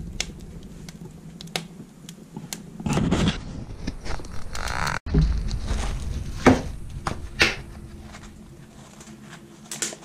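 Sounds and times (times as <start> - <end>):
fire rushing noise: 0.0 - 9.0
wood fire crackling: 0.0 - 10.0.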